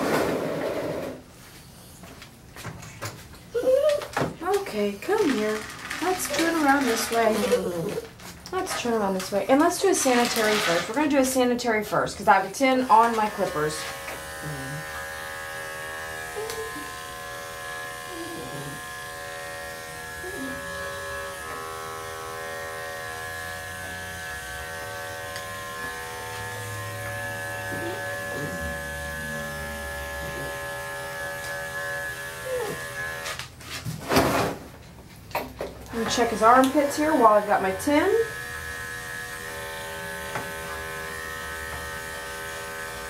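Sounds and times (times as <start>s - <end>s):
electric clippers humming: 12.4s - 33.5s, 36.1s - 43.0s.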